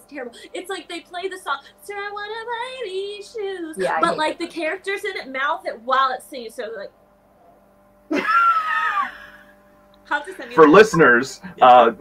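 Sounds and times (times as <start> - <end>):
person singing a wavering high note: 3.8 - 4.3.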